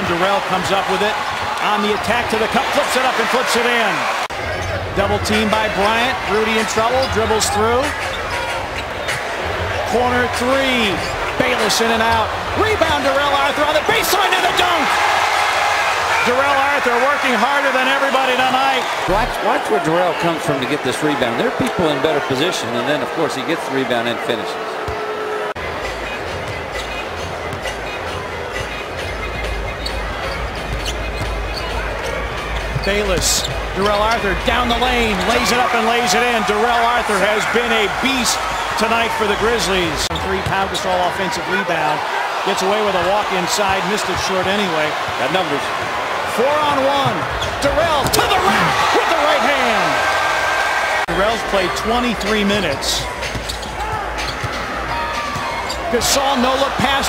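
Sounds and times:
arena crowd noise: 0.0 - 57.0.

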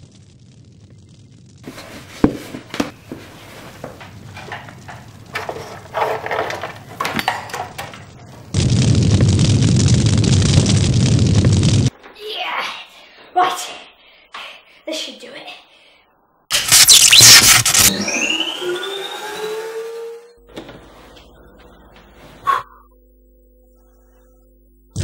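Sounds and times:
knocks and thuds: 1.6 - 8.2.

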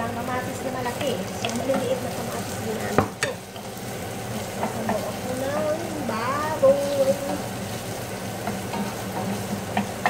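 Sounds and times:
tomatoes sizzling in a pot: 0.0 - 10.0.

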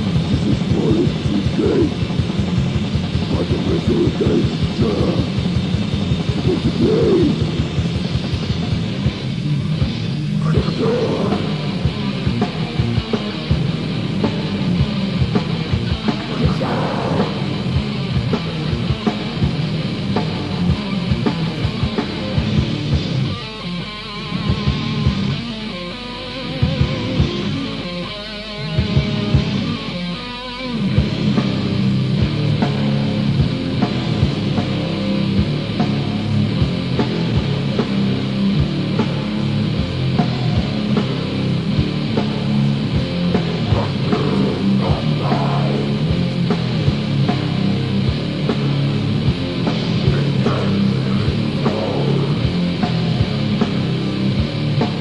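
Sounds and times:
fast dense drums: 0.0 - 23.3, 31.0 - 55.0
death metal band playing: 0.0 - 55.0
distorted guitars: 0.0 - 55.0.

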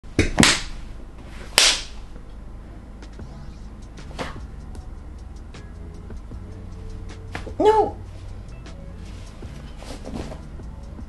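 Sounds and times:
hands clapping: 7.1 - 7.6.

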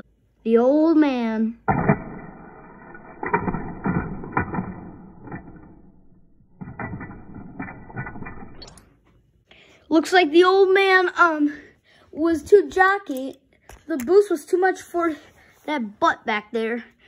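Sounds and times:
toy car clattering on plastic track: 3.2 - 8.8.

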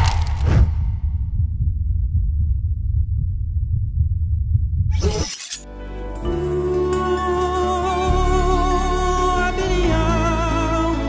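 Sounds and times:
deep low rumble: 0.0 - 5.2
sustained music: 5.6 - 11.0.

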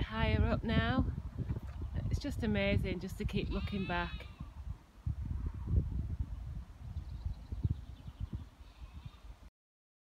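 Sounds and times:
wind buffeting microphone: 0.0 - 9.5
distant sheep bleating: 3.4 - 4.5, 8.6 - 9.3.

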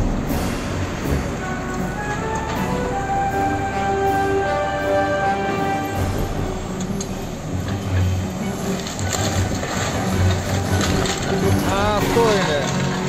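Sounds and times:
excavator diesel engine rumbling: 0.0 - 13.0
rubble falling: 6.0 - 13.0
bucket crunching through walls: 7.4 - 13.0.

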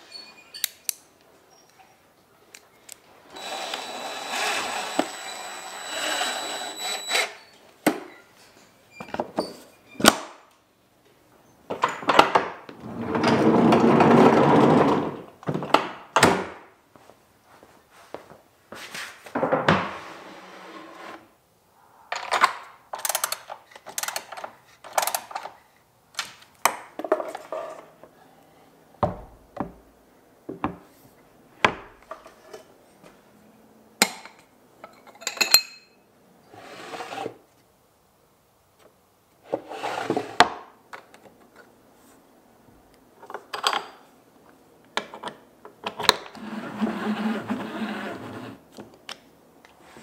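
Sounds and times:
knocks and thunks on wood cabinet: 29.0 - 29.8.

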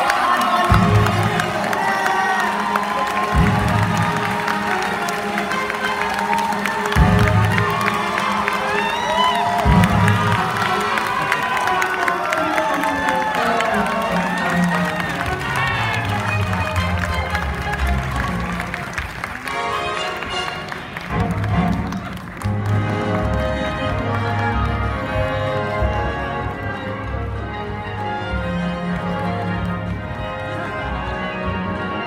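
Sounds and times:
audience cheering and whooping: 0.0 - 19.6
audience clapping: 0.0 - 32.0.

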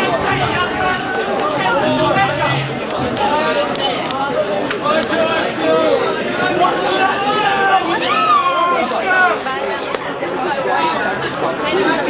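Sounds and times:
babble of overlapping voices: 0.0 - 12.0.

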